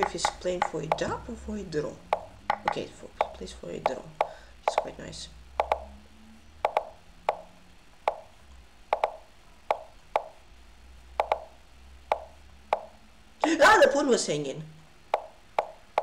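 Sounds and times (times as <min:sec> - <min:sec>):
wooden clack sound effects: 0:00.0 - 0:01.1, 0:02.1 - 0:04.9, 0:05.6 - 0:05.9, 0:06.6 - 0:07.5, 0:08.1 - 0:08.3, 0:08.9 - 0:10.4, 0:11.2 - 0:11.5, 0:12.1 - 0:13.6, 0:15.1 - 0:16.0.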